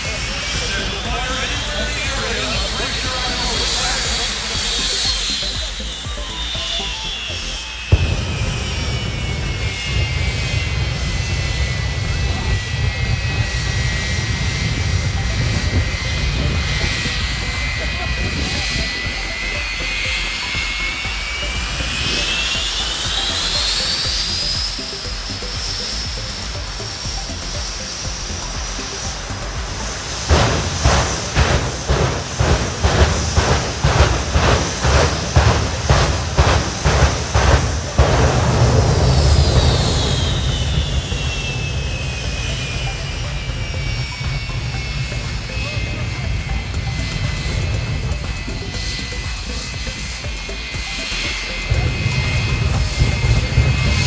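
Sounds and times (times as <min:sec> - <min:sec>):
jet engine whining: 0:00.0 - 0:54.0.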